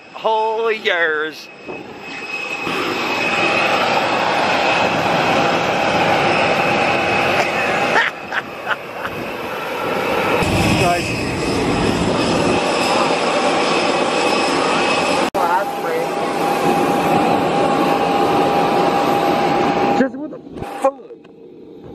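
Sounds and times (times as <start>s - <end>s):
jet engines whining: 0.0s - 21.9s.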